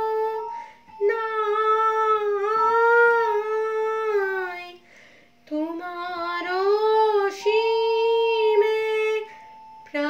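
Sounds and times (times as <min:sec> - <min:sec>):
woman singing long note: 0:00.0 - 0:04.8, 0:05.5 - 0:10.0
faint steady drone: 0:00.0 - 0:10.0.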